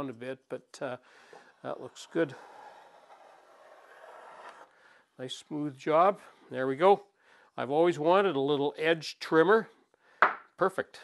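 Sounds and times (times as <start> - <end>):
wood plane shaving hiss: 1.3 - 4.7.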